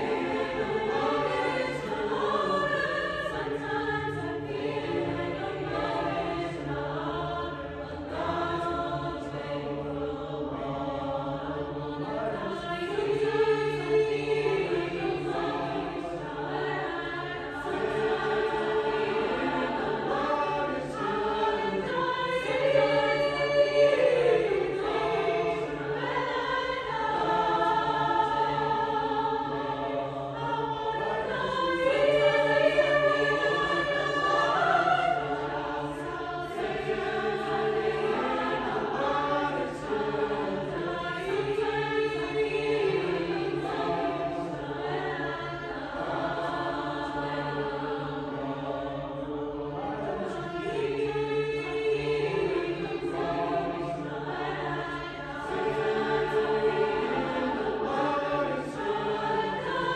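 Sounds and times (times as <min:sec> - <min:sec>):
mixed-voice choir singing: 0:00.0 - 0:59.9.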